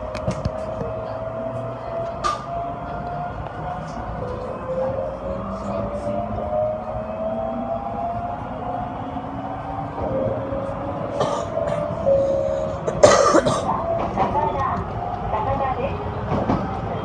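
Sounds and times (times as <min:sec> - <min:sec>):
train drive whine: 0:00.0 - 0:17.0
train running noise: 0:00.0 - 0:17.0.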